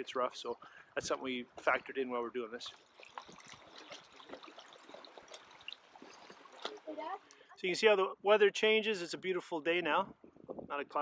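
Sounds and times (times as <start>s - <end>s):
water trickling: 0.0s - 7.9s
water lapping against hull: 0.6s - 7.6s
paddle dipping in water: 1.5s - 7.5s.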